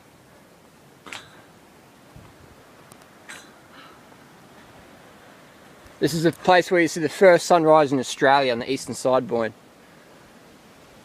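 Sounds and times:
faint wind: 0:00.0 - 0:11.0.

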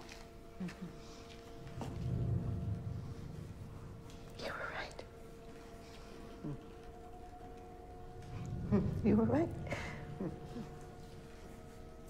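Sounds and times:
faint steady hum: 0:00.0 - 0:12.0
person whispering: 0:04.3 - 0:05.2.

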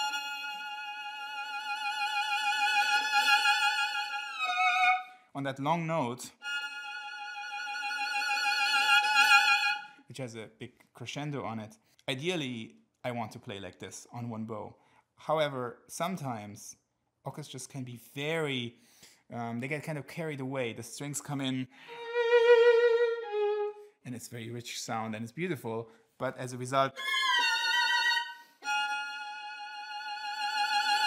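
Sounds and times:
violin long bowed note: 0:00.0 - 0:05.2, 0:06.4 - 0:10.0, 0:21.9 - 0:23.8, 0:27.0 - 0:31.0.

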